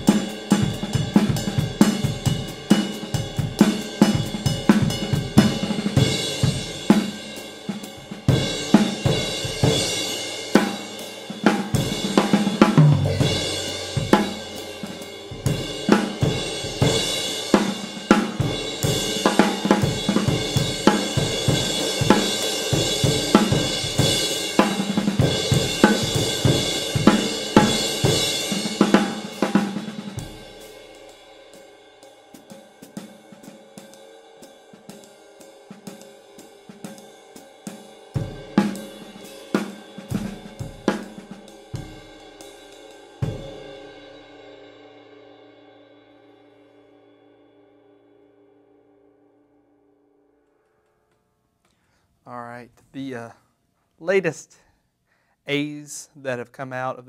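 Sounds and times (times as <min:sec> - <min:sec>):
snare bass drum and hi-hats: 0:00.0 - 0:31.7, 0:32.4 - 0:43.6
ride cymbal played with stick: 0:00.0 - 0:44.6.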